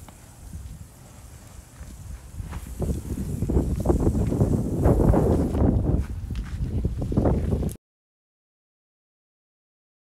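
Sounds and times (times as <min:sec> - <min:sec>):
burning wood crackling: 0:00.0 - 0:07.8
wind buffeting microphone: 0:00.0 - 0:07.8.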